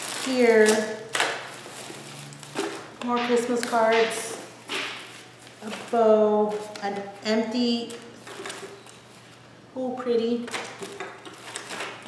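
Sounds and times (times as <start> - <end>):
plastic packaging rustling: 0.0 - 9.5, 10.5 - 12.0.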